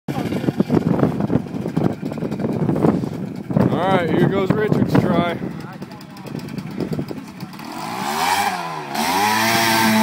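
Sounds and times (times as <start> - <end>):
atv engine running: 0.1 - 10.0
onlookers talking: 3.6 - 8.9.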